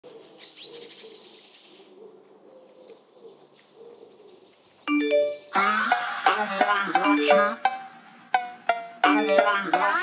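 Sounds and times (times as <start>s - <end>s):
bird cooing calls: 0.2s - 4.5s
small birds chirping: 0.2s - 6.0s.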